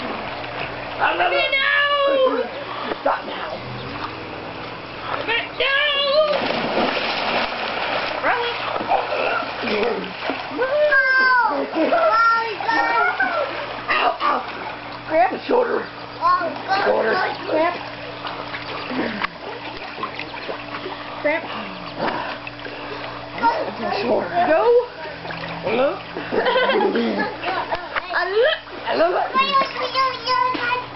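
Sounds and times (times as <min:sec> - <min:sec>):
water churning and slapping: 0:00.0 - 0:30.9
body splashing into pool: 0:06.1 - 0:10.7.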